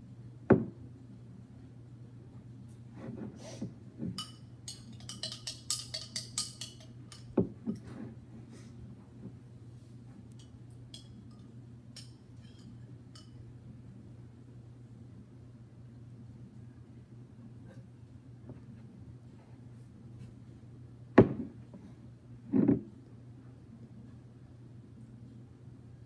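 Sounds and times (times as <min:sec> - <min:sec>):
low steady hum: 0:00.0 - 0:26.0
metal spoon clinking against glass: 0:04.2 - 0:07.4, 0:10.4 - 0:13.4.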